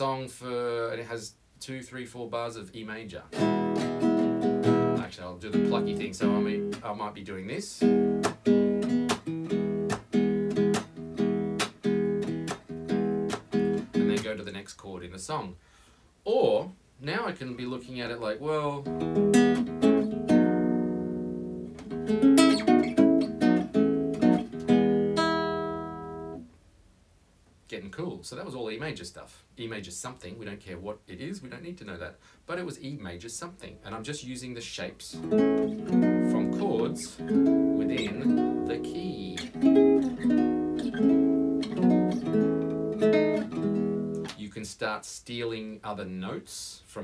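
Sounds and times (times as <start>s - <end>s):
nylon-string guitar fingerpicked: 3.3s - 14.5s, 18.0s - 26.5s, 35.1s - 44.4s.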